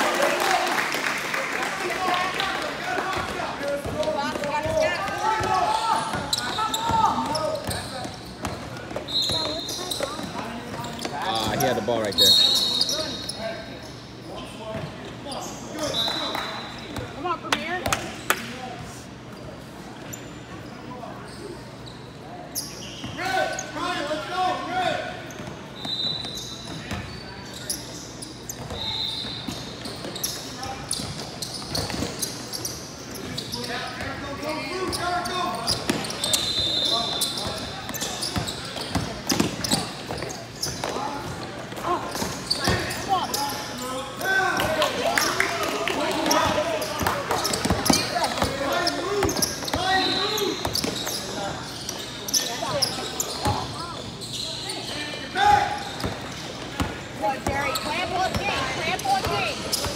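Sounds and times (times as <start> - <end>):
shoe squeaks: 4.2 - 17.0, 19.3 - 24.0, 25.2 - 44.4, 46.0 - 59.9
basketball bouncing on court: 37.2 - 41.4, 46.2 - 49.8
people talking: 56.8 - 59.9.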